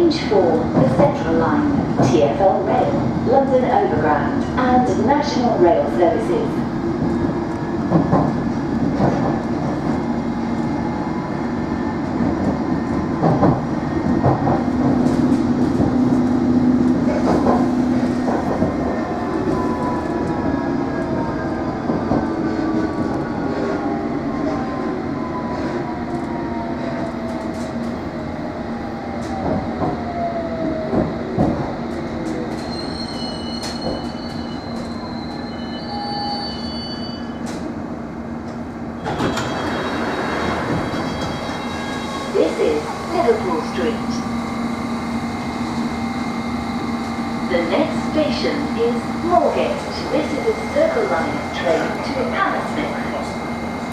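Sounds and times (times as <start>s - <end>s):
train rumble and wheel clicks: 0.0s - 53.9s.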